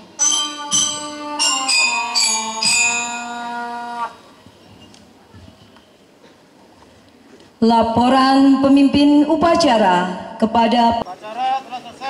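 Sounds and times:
bell-like electronic keyboard notes: 0.0s - 4.2s.

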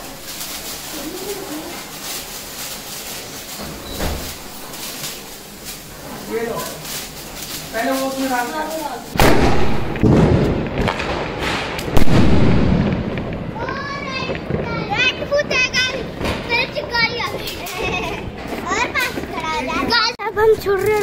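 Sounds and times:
firework bang: 9.1s - 19.3s.

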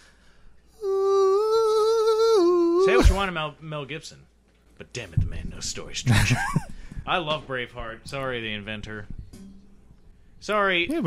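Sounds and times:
man humming: 0.8s - 3.2s.

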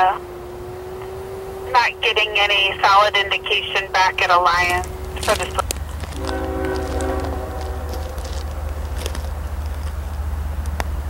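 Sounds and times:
train rumbling: 1.1s - 11.0s
locomotive air horn: 4.8s - 9.6s.

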